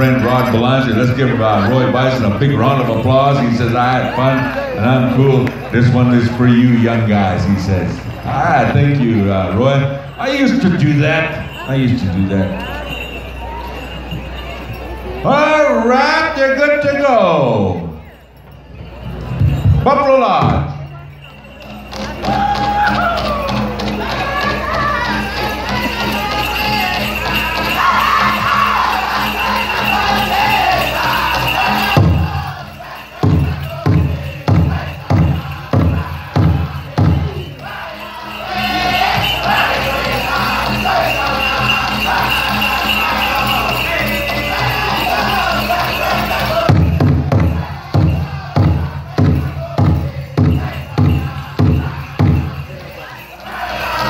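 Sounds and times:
men singing in high voices: 0:24.0 - 0:54.0
big drum beating: 0:31.4 - 0:37.7, 0:46.5 - 0:52.8.

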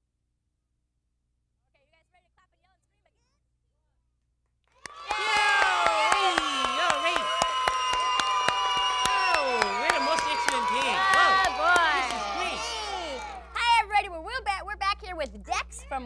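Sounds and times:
hands clapping: 0:04.7 - 0:13.7
children cheering and shouting: 0:04.8 - 0:13.8.

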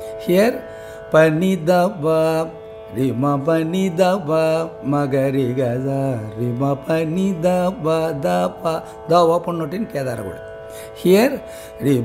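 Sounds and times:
man singing: 0:00.1 - 0:12.0.

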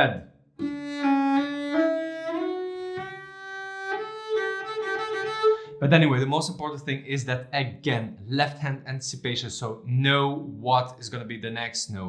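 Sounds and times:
bowed cello notes: 0:00.6 - 0:06.2.

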